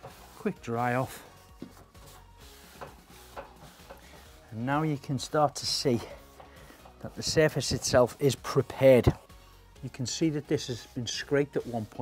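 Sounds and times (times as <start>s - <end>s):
cloth wiping metal radiator: 0.0s - 9.2s, 9.9s - 12.0s
quiet background music: 0.0s - 12.0s.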